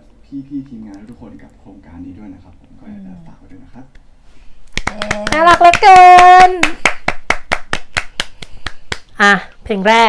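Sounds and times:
people clapping hands: 4.7 - 9.1.

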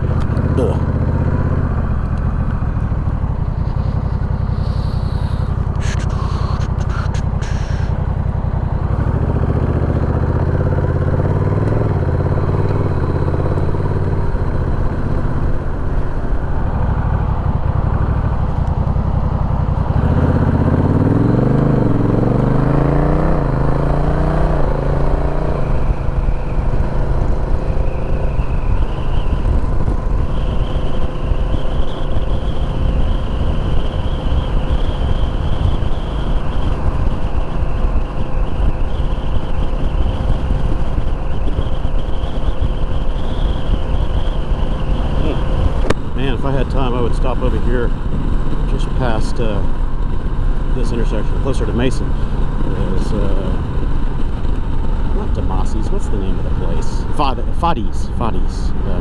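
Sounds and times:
motorcycle engine accelerating: 0.0 - 59.0
wind noise: 0.0 - 59.0.

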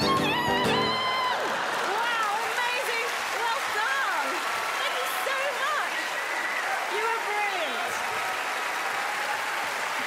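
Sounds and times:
audience applauding: 0.0 - 10.0
voices cheering: 0.0 - 10.0.

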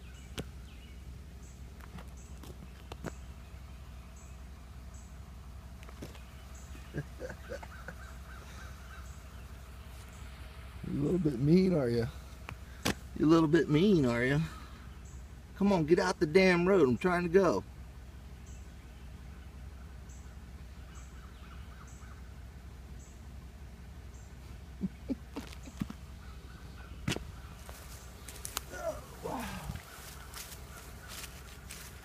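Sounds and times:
faint bird calls: 0.0 - 15.5, 18.2 - 32.0
steady low rumble: 0.0 - 32.0
high bird chirp: 6.0 - 11.5.

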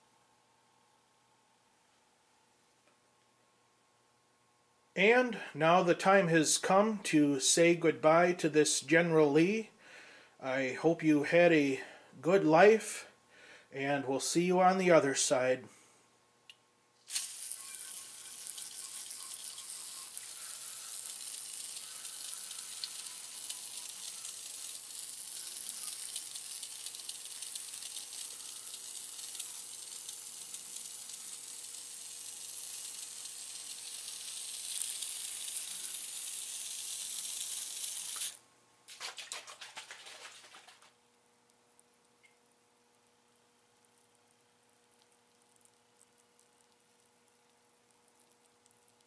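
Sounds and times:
faint crackle: 17.0 - 38.4, 39.6 - 49.0
aerosol spray hiss: 17.1 - 38.4.

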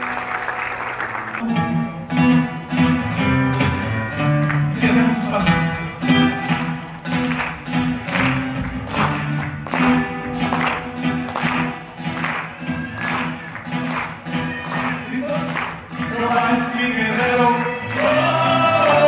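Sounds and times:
strummed acoustic guitar: 1.4 - 19.0.

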